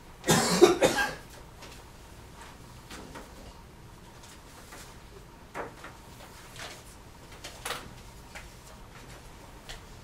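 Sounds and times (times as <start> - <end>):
person coughing: 0.2 - 1.3.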